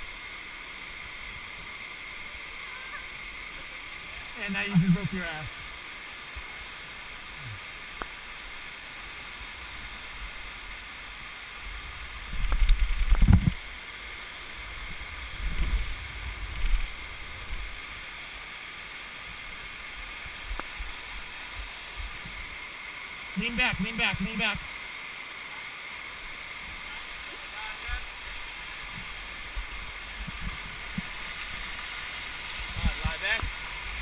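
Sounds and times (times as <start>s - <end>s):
mountain stream rushing: 0.0s - 34.0s.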